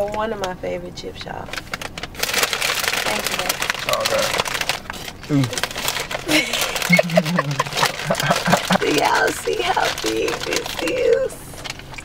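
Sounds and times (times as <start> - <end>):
chip bag crinkling: 1.4 - 12.0
person's voice: 6.3 - 11.4.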